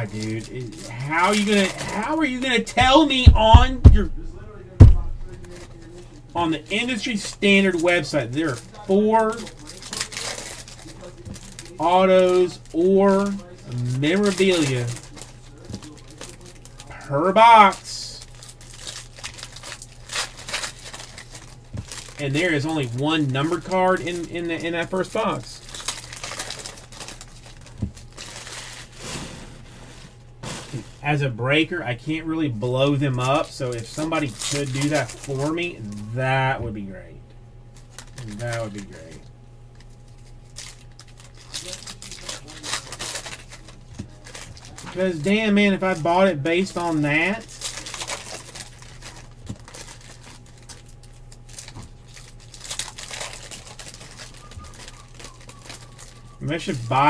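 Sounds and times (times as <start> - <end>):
foil wrappers crinkling and tearing: 0.0 - 36.7, 37.7 - 57.0
faint low hum: 0.0 - 57.0
short thump: 3.3 - 5.4.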